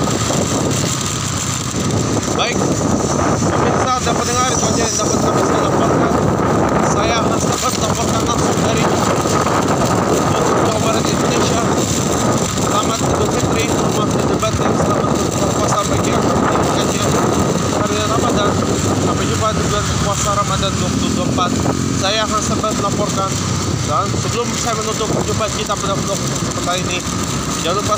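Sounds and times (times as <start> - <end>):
motorcycle engine running: 0.0 - 27.9
wind rushing over microphone: 0.0 - 27.9.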